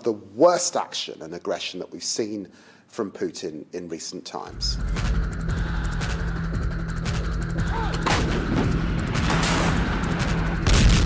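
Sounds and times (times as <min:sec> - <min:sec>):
low drone: 0:04.6 - 0:10.9
artillery gunfire: 0:10.6 - 0:11.0.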